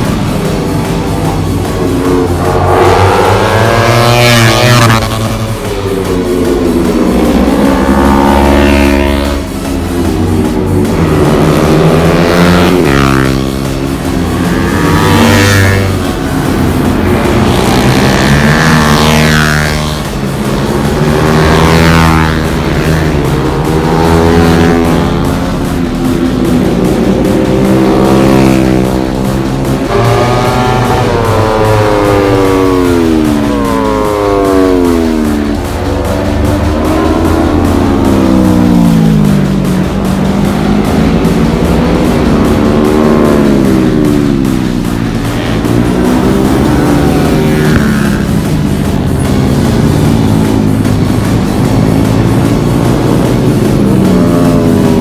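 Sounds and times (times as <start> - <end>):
background music: 0.0 - 55.0
motorcycles passing at speed: 0.0 - 55.0.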